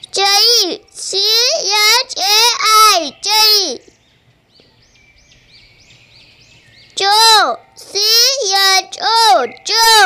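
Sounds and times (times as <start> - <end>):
child's voice reading aloud: 0.0 - 3.9, 7.0 - 10.0
faint bird chirping: 0.0 - 10.0.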